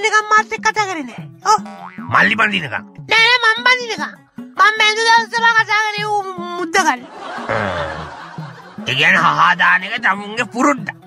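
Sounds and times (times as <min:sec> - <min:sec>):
faint background music: 0:00.0 - 0:11.0
person snickering laugh: 0:07.4 - 0:08.3.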